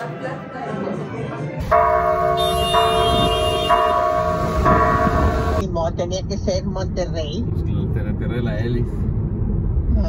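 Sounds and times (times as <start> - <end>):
low street rumble: 0.0 - 10.0
church bells ringing: 1.6 - 5.6.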